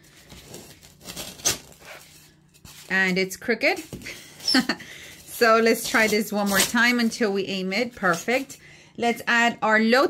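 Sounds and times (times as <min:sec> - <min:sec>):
paper rustle: 0:00.0 - 0:08.4
woman speaking: 0:02.9 - 0:04.7, 0:05.3 - 0:10.0.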